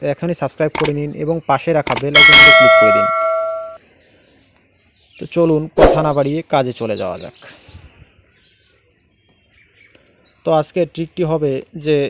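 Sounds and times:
notification bell chime: 2.2 - 3.8.

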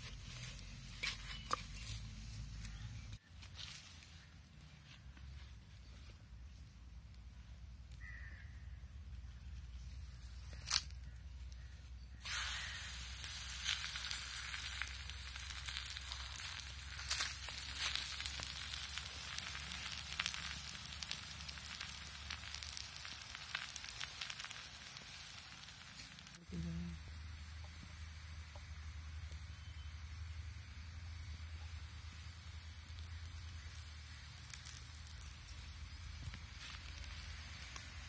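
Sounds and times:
batter sizzling on hot pan: 12.1 - 38.0.

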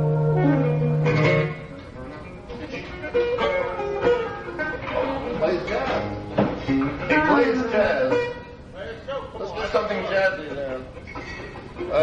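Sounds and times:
live band chord: 0.0 - 8.6
electric guitar notes: 0.0 - 8.8, 10.8 - 12.0.

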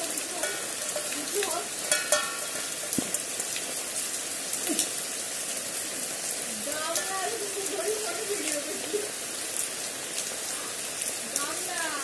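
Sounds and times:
rain drop ticks: 0.0 - 12.0
steady rainfall: 0.0 - 12.0.

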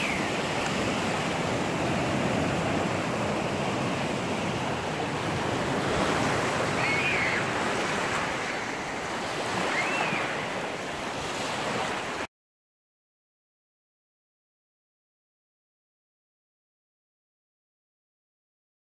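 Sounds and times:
waves washing onto beach: 0.0 - 12.3
faint short whistles: 9.7 - 10.4.

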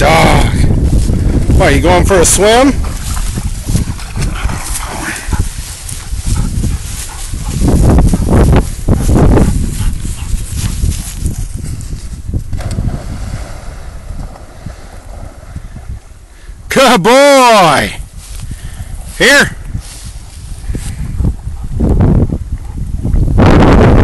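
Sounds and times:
wind noise on microphone: 0.0 - 24.0
dog splashing and swimming: 2.3 - 11.7.

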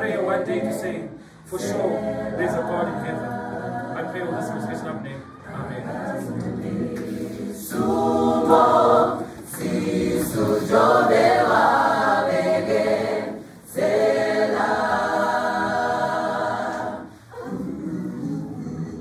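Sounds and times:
mixed choir singing in harmony: 0.0 - 19.0.

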